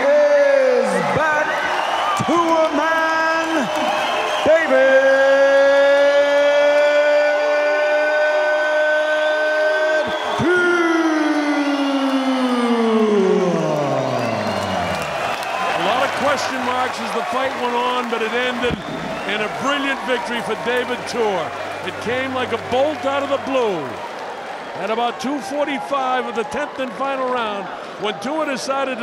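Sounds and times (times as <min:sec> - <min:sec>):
faint crowd noise: 0:09.8 - 0:29.0
announcer calling over pa: 0:19.3 - 0:24.0.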